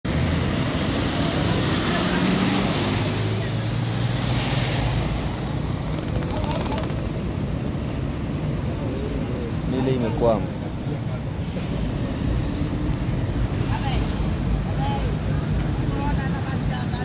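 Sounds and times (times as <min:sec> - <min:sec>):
floodwater rushing: 0:00.2 - 0:05.8
motorcycle engine running: 0:05.8 - 0:07.2.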